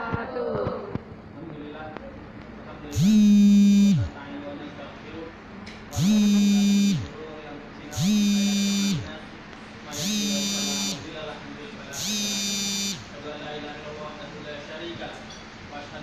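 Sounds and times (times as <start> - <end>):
vibrating motor buzzing: 2.9 - 4.1, 5.9 - 7.1, 7.9 - 9.2, 9.9 - 11.0, 12.0 - 13.1.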